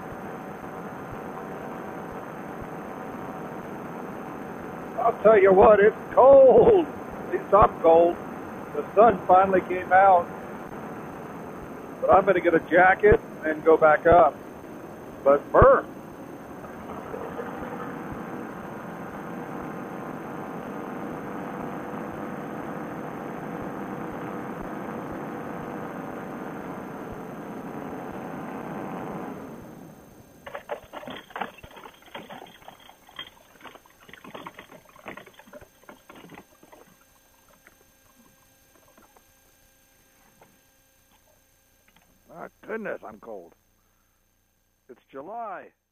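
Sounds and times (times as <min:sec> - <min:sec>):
paramotor engine running: 0:15.2 - 0:39.2
trike rattling over bumpy grass: 0:30.4 - 0:38.2.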